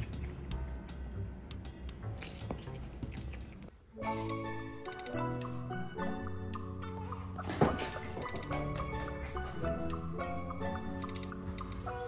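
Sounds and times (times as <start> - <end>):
otter chewing cucumber crunchily: 0.0 - 0.9, 2.0 - 3.7
background music: 0.0 - 12.0.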